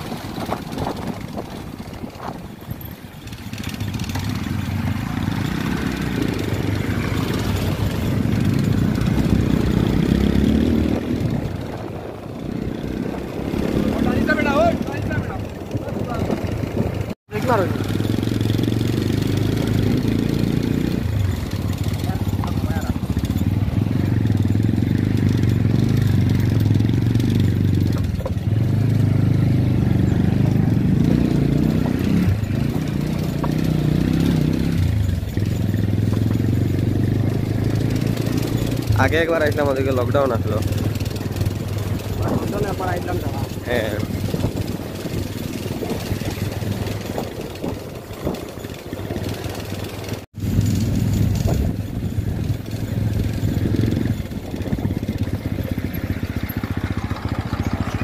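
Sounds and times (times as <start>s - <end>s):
motorcycle engine revving: 0.0s - 58.0s.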